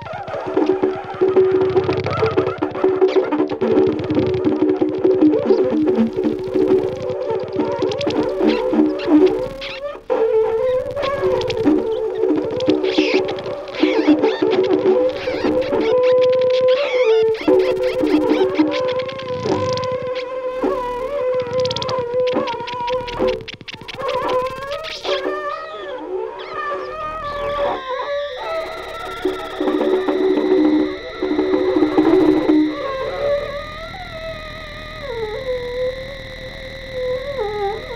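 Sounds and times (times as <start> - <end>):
electric guitar through effects: 0.0 - 37.9
saxophone: 0.0 - 37.9.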